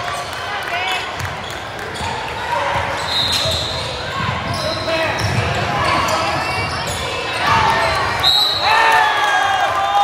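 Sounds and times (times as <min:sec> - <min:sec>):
sneakers squeaking: 0:00.1 - 0:08.9.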